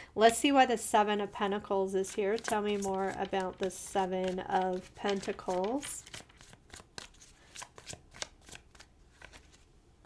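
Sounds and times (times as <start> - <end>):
cards being shuffled: 2.0 - 9.7.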